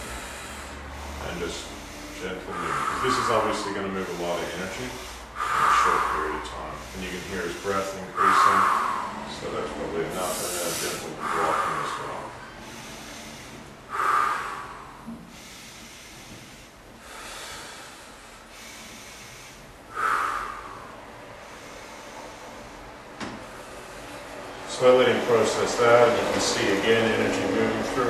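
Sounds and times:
man breathing heavily: 0.0s - 28.0s.

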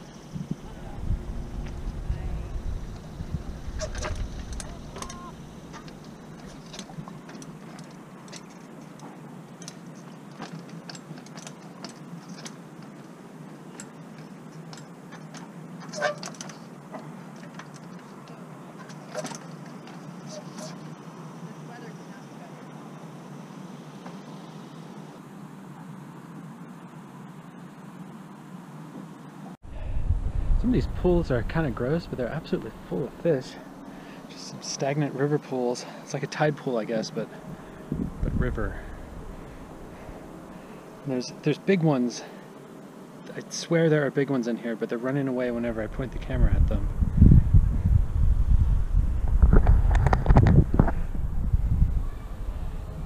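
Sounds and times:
wind buffeting microphone: 0.0s - 7.6s, 29.6s - 33.9s, 37.2s - 41.0s, 45.6s - 53.0s.

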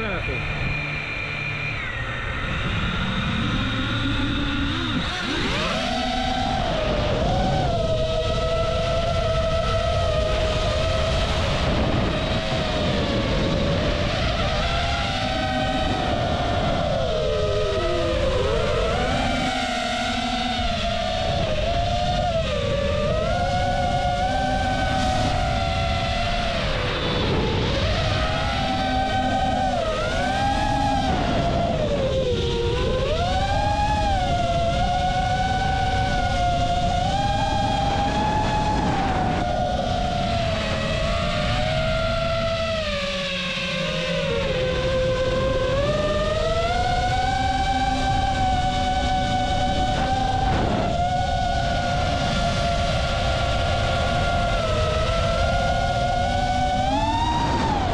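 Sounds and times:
drone propellers whining: 0.0s - 57.9s
low rumble of air on microphone: 0.0s - 57.9s.

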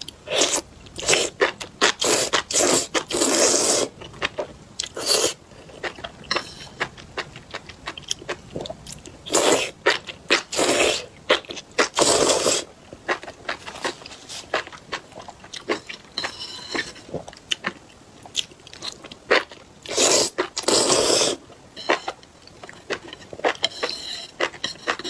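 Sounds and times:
wet chewing and crunching: 0.0s - 12.4s, 13.0s - 16.2s, 16.8s - 20.9s
loud slurping of noodles: 2.0s - 3.9s, 19.9s - 21.4s.

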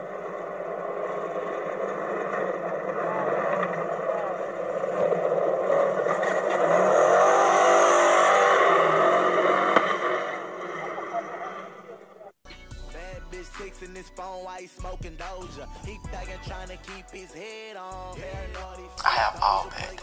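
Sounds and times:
utility vehicle engine revving: 0.0s - 12.2s
rap music: 12.4s - 20.0s.

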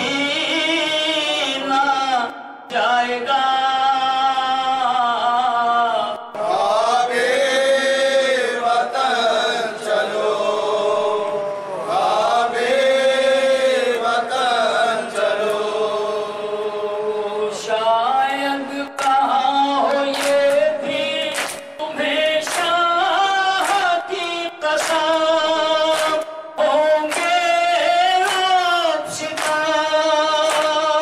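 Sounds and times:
man chanting a lament: 0.0s - 31.0s.

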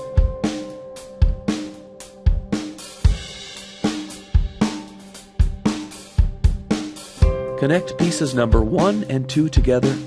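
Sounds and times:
drum kit beat: 0.0s - 10.0s.

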